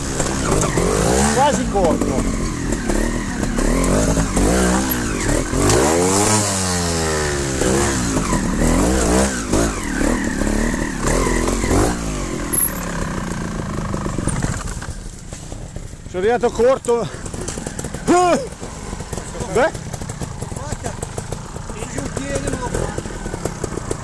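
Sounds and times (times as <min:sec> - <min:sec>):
motorcycle engines revving: 0:00.0 - 0:24.0.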